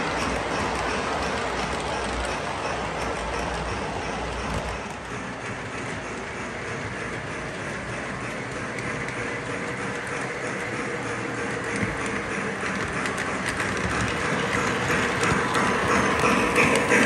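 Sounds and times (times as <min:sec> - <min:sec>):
model train wheels clattering on rails: 0:00.0 - 0:17.0.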